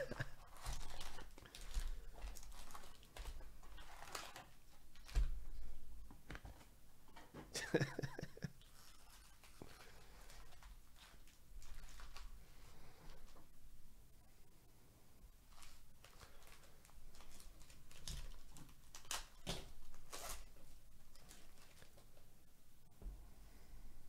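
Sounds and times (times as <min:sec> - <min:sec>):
person chuckling: 0:00.0 - 0:00.7, 0:07.4 - 0:09.1
foil wrappers crinkling: 0:00.0 - 0:05.7, 0:08.6 - 0:13.4, 0:15.5 - 0:22.2.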